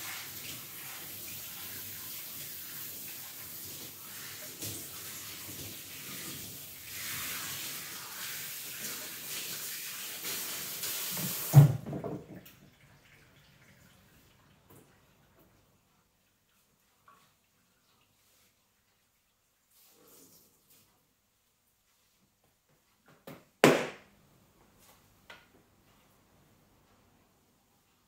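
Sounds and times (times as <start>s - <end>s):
hand shower spraying water: 0.0s - 11.7s.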